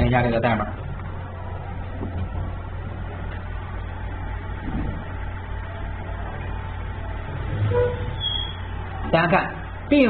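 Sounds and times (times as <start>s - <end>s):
low hum: 0.0s - 9.9s.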